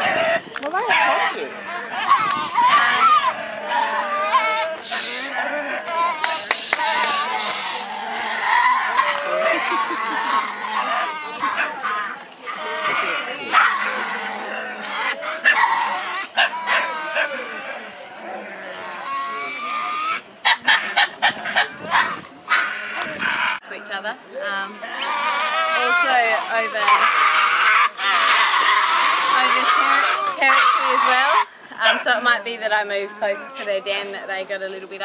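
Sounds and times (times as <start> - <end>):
animals growling and screeching: 0.0 - 23.6, 24.6 - 32.0.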